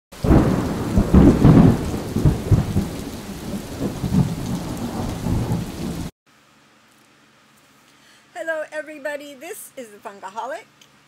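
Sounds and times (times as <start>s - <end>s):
steady rain: 0.1s - 6.1s
rumbling thunder: 0.2s - 6.1s.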